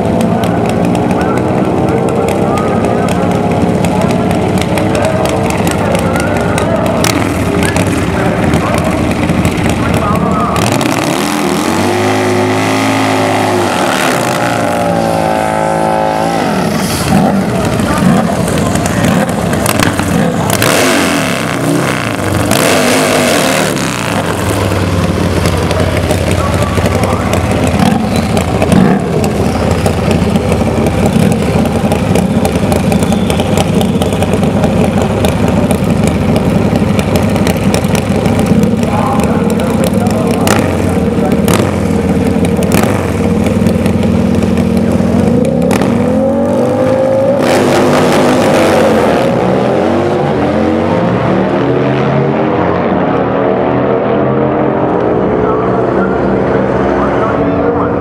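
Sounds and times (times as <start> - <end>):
motorcycle engine revving and idling: 0.0 - 58.0.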